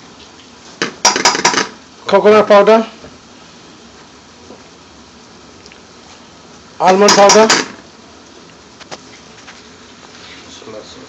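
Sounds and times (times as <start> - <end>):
faint kitchen hiss: 0.0 - 11.0.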